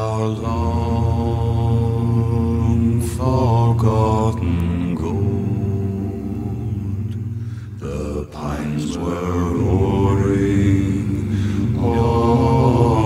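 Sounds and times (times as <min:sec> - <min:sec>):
deep male voices chanting: 0:00.0 - 0:13.0.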